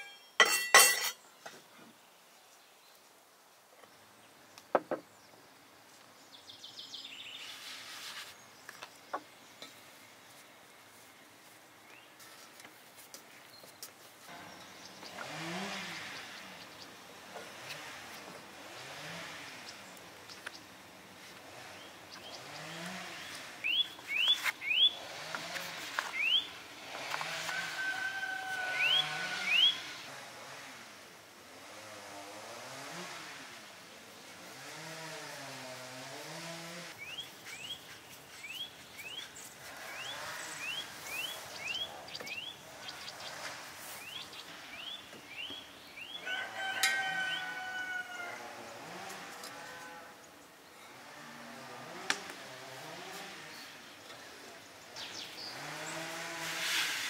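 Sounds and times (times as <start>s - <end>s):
bird chirping: 21.7s - 25.1s, 26.0s - 26.6s, 28.7s - 30.0s, 37.0s - 46.3s
loud pitched bird call: 23.6s - 25.0s, 26.1s - 26.6s, 27.5s - 30.0s.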